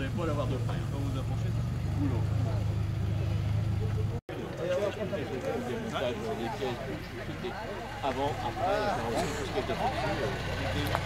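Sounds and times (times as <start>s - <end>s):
car engine running at low revs: 0.0s - 4.2s.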